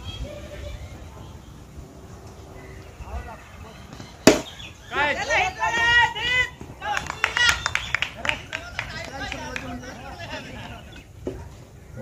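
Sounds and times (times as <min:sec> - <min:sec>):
cricket bat striking ball: 0:04.2 - 0:04.6
players shouting: 0:04.7 - 0:11.1.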